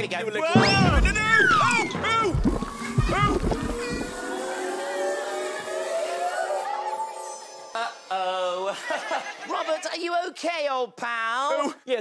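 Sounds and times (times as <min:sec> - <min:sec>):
comic rising tone: 0:00.6 - 0:08.2.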